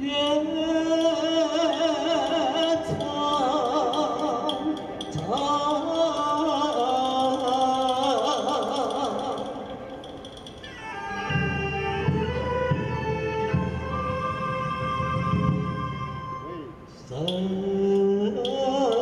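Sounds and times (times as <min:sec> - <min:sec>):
man singing with vibrato: 0:00.0 - 0:15.4, 0:16.2 - 0:19.0
bamboo flutes holding long notes: 0:00.0 - 0:17.4
traditional orchestra: 0:00.0 - 0:18.1.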